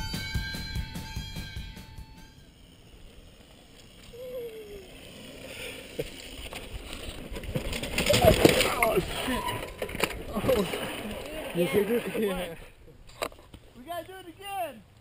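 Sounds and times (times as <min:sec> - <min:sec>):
mountain bike tyre noise on dirt: 0:00.0 - 0:14.9
voices: 0:04.0 - 0:05.5, 0:08.0 - 0:12.9.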